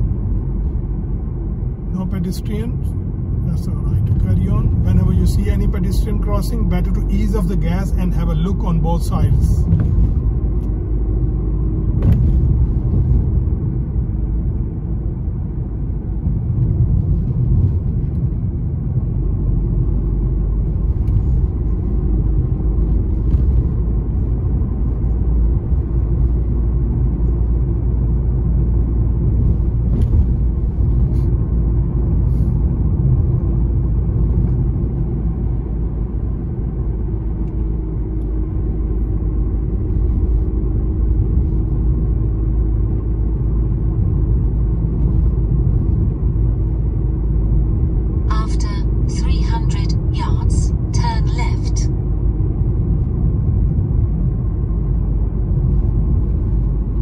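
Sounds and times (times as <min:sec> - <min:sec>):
car driving interior rumble: 0:00.0 - 0:57.0.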